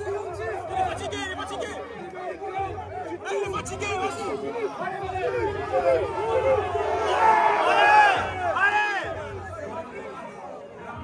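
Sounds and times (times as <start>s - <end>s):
crowd chattering: 0.0s - 11.0s.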